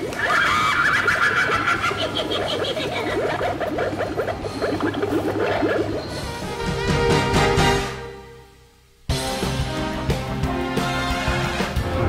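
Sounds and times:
witch prop cackling laughter: 0:00.0 - 0:05.9.

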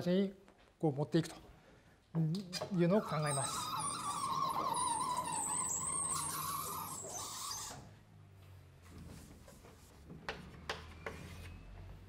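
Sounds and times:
sliding panels squealing: 0:02.7 - 0:07.9.

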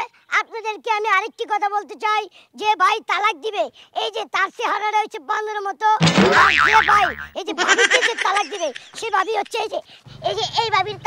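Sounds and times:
wobbling warbling comedy tone: 0:06.0 - 0:08.5
person speaking: 0:06.0 - 0:09.6.

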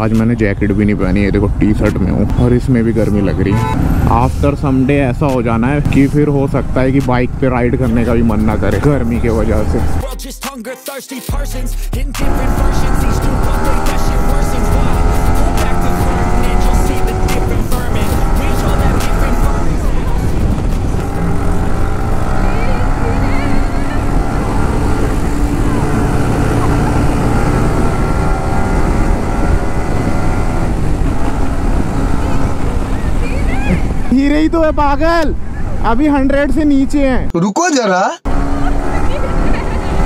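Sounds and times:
motorcycle engine accelerating: 0:00.0 - 0:10.1, 0:12.0 - 0:35.9, 0:38.2 - 0:40.0
wind noise on microphone: 0:14.5 - 0:35.9.

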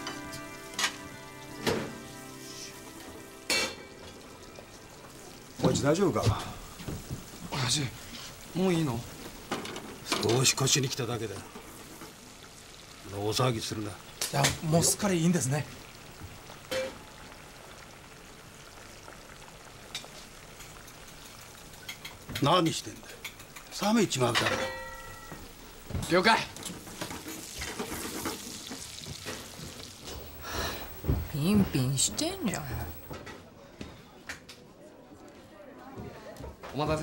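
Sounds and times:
food sizzling in a pan: 0:00.0 - 0:33.2.

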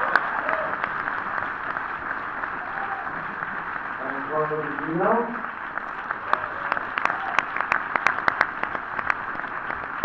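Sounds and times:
audience applauding: 0:00.0 - 0:10.0
loud individual claps: 0:00.0 - 0:10.0.

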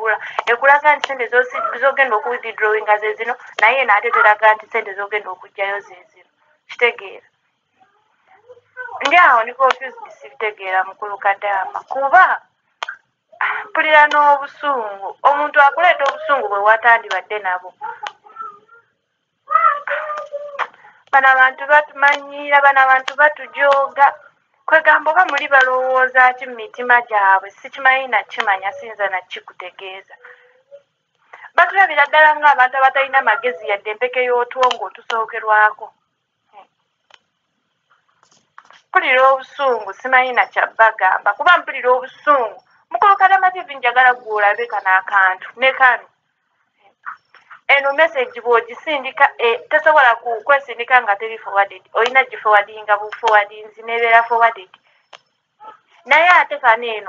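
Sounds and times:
person speaking: 0:00.0 - 0:07.2, 0:08.4 - 0:18.8, 0:19.5 - 0:30.7, 0:31.5 - 0:35.9, 0:38.3 - 0:46.1, 0:47.0 - 0:54.8.

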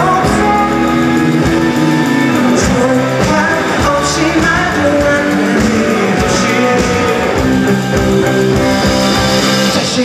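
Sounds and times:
man singing lead vocal: 0:00.0 - 0:08.5, 0:09.5 - 0:10.0
live rock band playing: 0:00.0 - 0:10.0.

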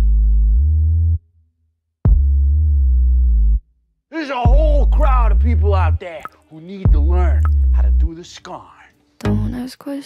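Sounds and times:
deep synthesizer bass tone: 0:00.0 - 0:01.4, 0:02.1 - 0:03.7, 0:04.5 - 0:06.0, 0:06.9 - 0:08.1.

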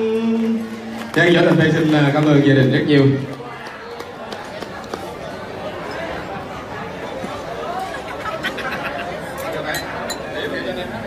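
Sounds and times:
murmur of crowd talking: 0:00.0 - 0:11.0.

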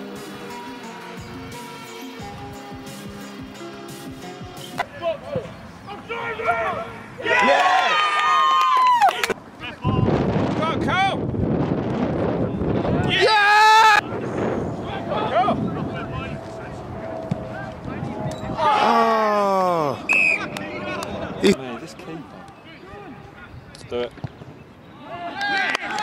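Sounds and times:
backing music: 0:00.0 - 0:04.9
men shouting and cheering: 0:04.9 - 0:09.8, 0:12.8 - 0:14.2, 0:14.8 - 0:16.8, 0:17.4 - 0:23.4, 0:25.0 - 0:26.0
rough rushing noise: 0:14.0 - 0:22.4.

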